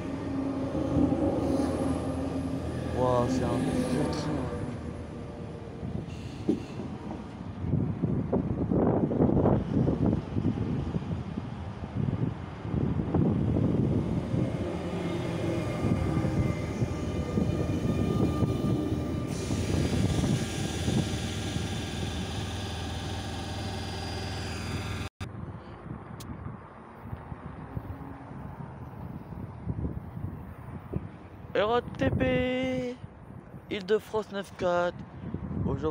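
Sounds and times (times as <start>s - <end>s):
train wheels rumbling on rail: 0.0s - 25.1s.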